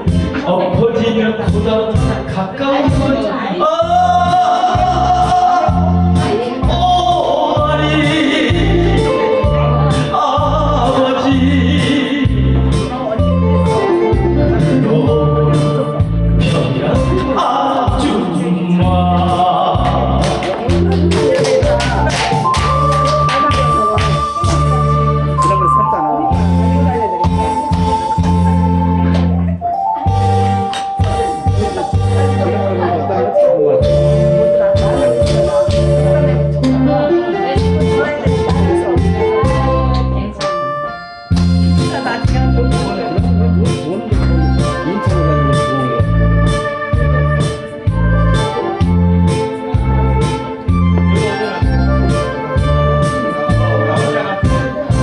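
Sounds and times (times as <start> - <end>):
bass and drum beat: 0.0 - 3.2, 3.8 - 29.5, 30.1 - 32.9, 33.8 - 40.3, 41.3 - 55.0
electronic organ: 0.0 - 55.0
instrumental karaoke backing track: 0.0 - 55.0.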